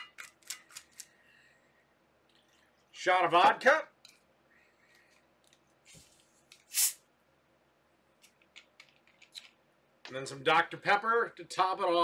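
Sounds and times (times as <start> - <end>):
short sharp hiss: 5.9 - 7.1.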